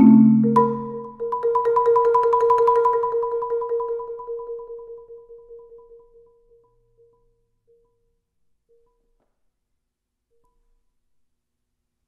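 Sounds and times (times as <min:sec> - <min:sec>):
marimba rapid repeated strokes: 0:00.0 - 0:05.8.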